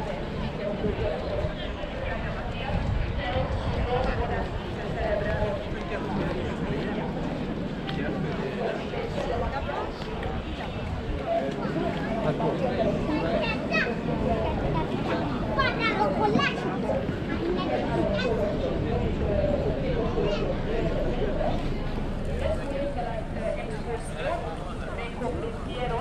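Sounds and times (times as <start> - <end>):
crowd chatter: 0.0 - 26.0
children's voices: 11.5 - 21.0.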